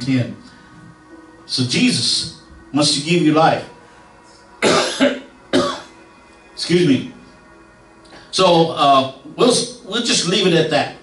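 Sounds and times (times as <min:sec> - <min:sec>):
man coughing: 0:04.6 - 0:05.9.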